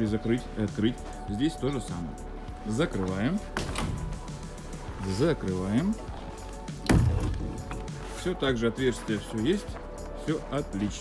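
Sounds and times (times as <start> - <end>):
background music: 0.0 - 11.0
door shutting knock and boom: 6.9 - 7.6.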